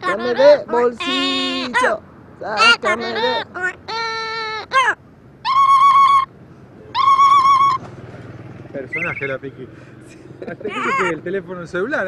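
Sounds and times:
parrot imitating phone ringing: 0:06.9 - 0:07.8, 0:08.9 - 0:09.3.

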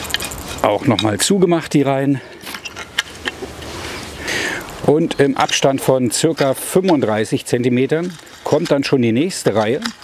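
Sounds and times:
cultivator scraping soil: 0:00.0 - 0:01.2.

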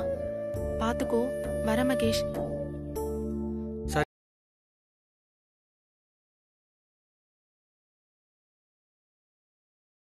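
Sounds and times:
background music: 0:00.0 - 0:04.1.

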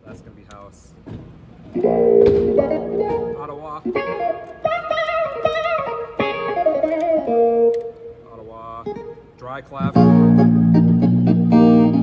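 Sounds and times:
clavinet keyboard notes: 0:01.8 - 0:07.6, 0:09.8 - 0:12.0.

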